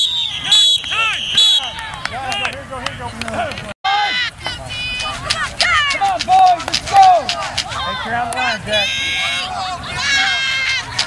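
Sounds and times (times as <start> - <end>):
spectators and players shouting: 0.0 - 11.0.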